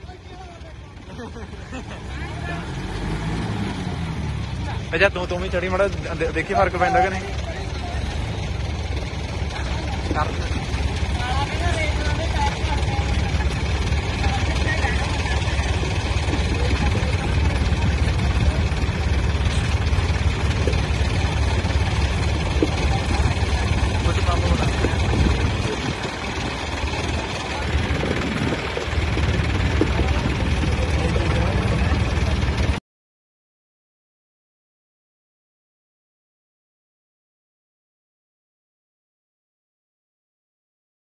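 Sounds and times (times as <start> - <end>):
tractor diesel engines under load: 0.0 - 32.8.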